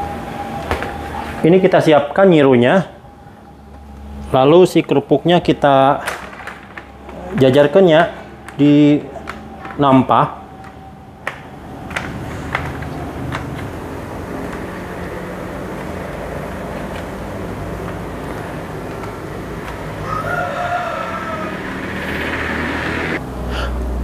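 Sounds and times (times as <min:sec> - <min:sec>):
low motor rumble: 0:00.0 - 0:24.0.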